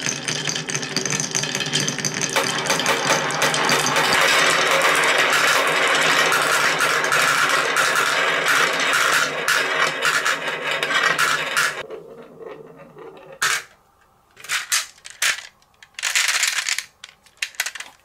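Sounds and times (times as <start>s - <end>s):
marbles rattling down wooden chutes: 0.0s - 11.9s, 14.5s - 18.0s.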